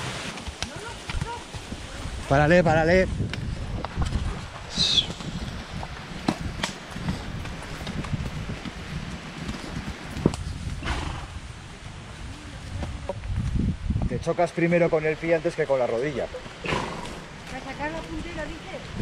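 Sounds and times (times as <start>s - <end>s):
horse hooves on dirt: 0.0s - 14.2s, 15.8s - 19.0s.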